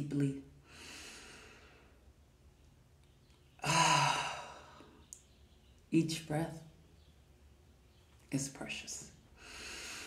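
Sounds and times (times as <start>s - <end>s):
woman sighing: 3.6s - 5.0s.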